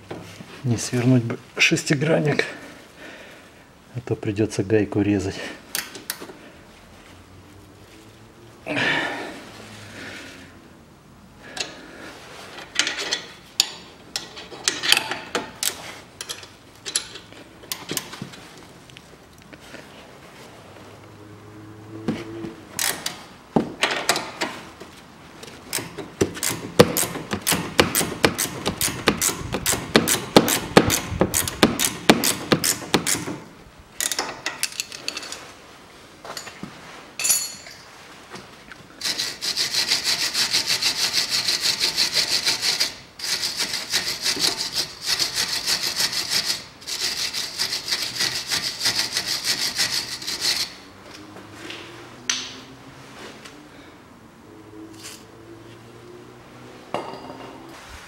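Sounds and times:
ratcheting wrench clicking: 25.7 - 33.4.

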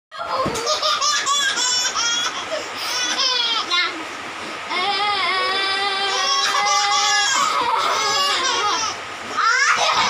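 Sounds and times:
baby laughing: 0.2 - 3.8, 6.0 - 10.0.

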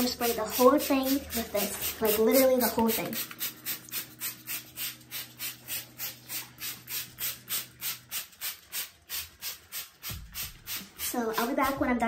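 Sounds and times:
spray bottle hissing: 0.2 - 11.4.

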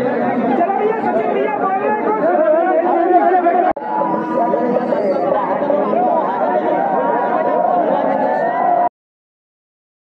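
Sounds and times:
crowd chatter: 0.0 - 8.9.

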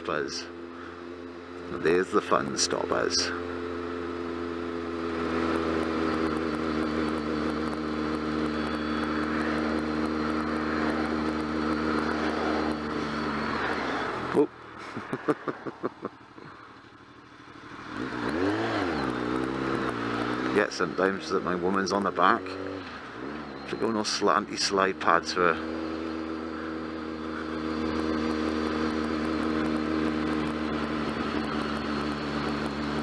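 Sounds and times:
motorcycle engine running: 0.0 - 33.0.

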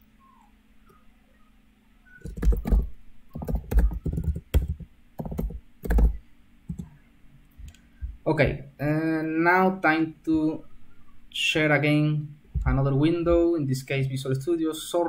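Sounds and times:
typing on computer keyboard: 2.2 - 6.9.

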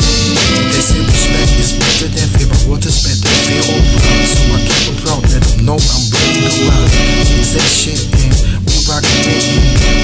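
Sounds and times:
hip-hop beat with drums and bass: 0.0 - 10.0
person rapping: 0.0 - 10.0.

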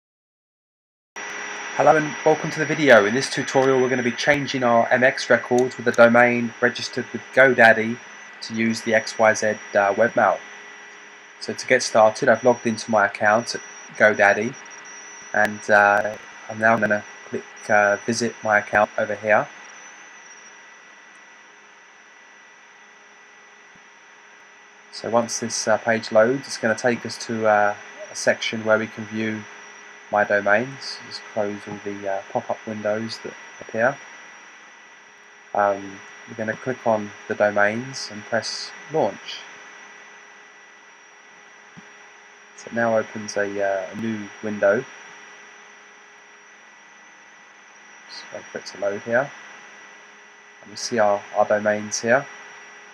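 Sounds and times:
electrical hum: 1.2 - 52.9
faint high whine: 1.2 - 52.9
background hiss: 1.3 - 21.2, 24.9 - 34.8, 35.5 - 39.8, 41.6 - 45.8, 46.6 - 52.9.

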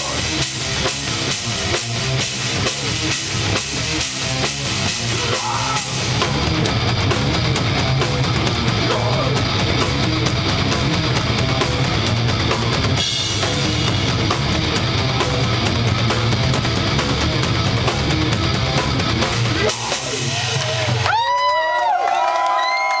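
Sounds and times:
hard rock band playing live: 0.0 - 21.5
distorted electric guitars: 0.0 - 21.6
drum kit with driving bass drum: 0.0 - 21.7
bass guitar: 0.0 - 21.8
crowd cheering: 19.7 - 23.0.

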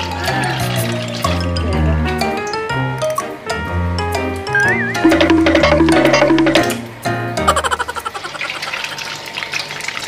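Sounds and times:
background music: 0.0 - 8.0.

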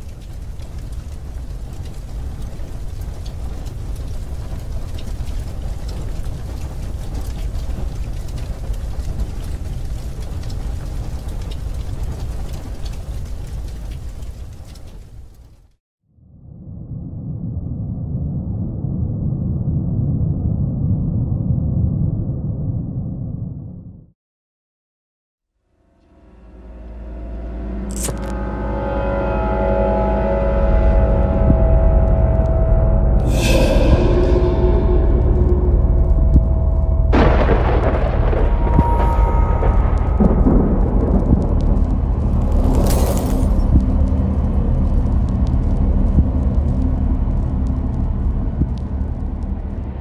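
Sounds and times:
low rumbling drone with tones: 16.1 - 24.1, 25.6 - 50.0.

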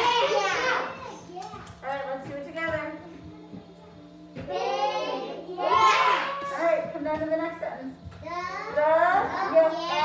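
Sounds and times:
young children speaking: 0.0 - 1.8, 4.5 - 6.6, 8.2 - 10.0.

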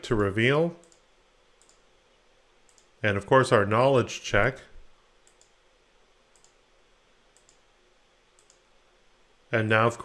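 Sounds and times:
computer mouse clicks: 0.8 - 1.8, 2.7 - 2.9, 5.2 - 5.6, 6.3 - 6.6, 7.4 - 7.6, 8.4 - 8.6.

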